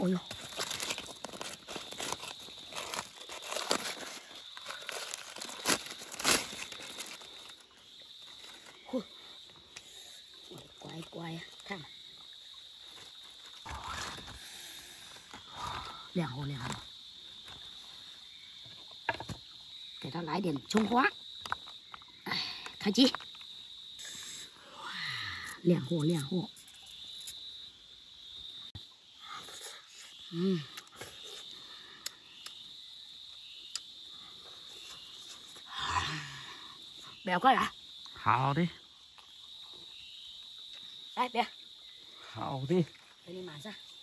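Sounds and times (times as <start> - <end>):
high insect drone: 0.0 - 44.0
foil crinkling and rustling: 0.3 - 7.6.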